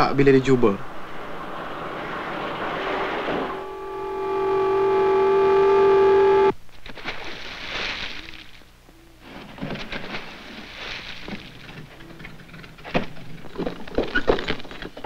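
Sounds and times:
steam hissing: 0.2s - 6.5s
steam whistle blowing: 2.7s - 6.5s.

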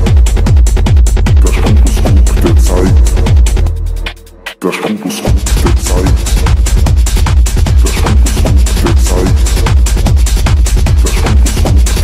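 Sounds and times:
kick drum: 0.0s - 4.2s, 5.3s - 12.0s
techno music: 0.0s - 12.0s.

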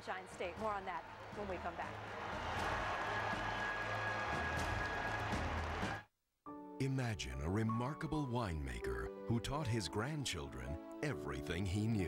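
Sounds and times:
crowd applause: 0.0s - 6.1s.

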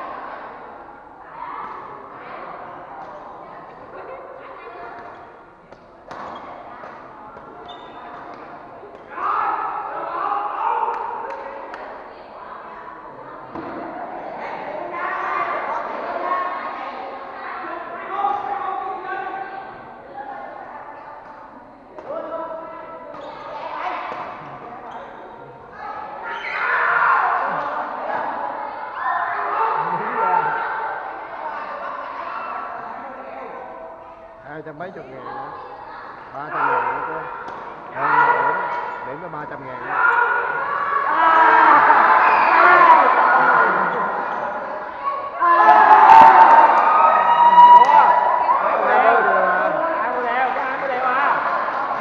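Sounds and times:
spectators' voices: 0.0s - 52.0s
racket hitting shuttlecock: 5.7s - 9.1s.

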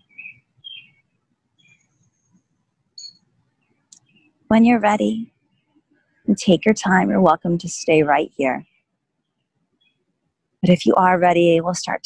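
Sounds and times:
small birds chirping: 0.0s - 6.1s, 8.6s - 12.0s.

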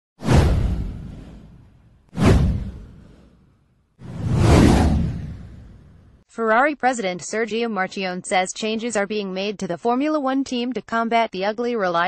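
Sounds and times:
whoosh sound effects: 0.2s - 3.4s, 4.0s - 6.2s
deep hit: 0.2s - 3.5s.

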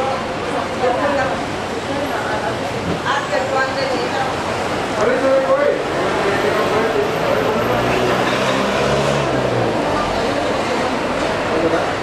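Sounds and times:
road noise: 0.0s - 12.0s
passing vehicle engine hum: 5.8s - 12.0s.

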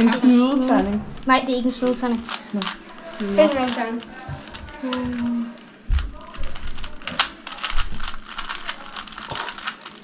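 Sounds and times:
plastic cube clicking as turned: 6.0s - 10.0s.

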